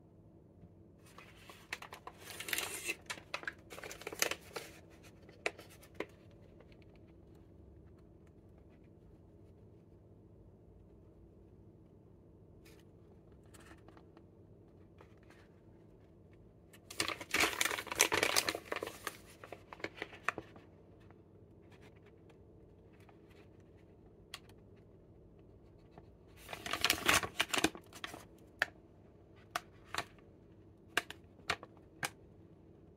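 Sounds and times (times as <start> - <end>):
plastic snack bags crinkling: 1.2 - 6.7, 16.8 - 20.6, 26.4 - 28.7.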